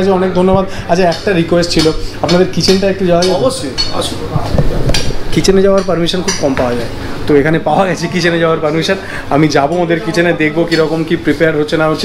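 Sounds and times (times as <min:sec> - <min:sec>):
man talking: 0:00.0 - 0:12.0
cutlery and dishes clinking: 0:01.1 - 0:06.8.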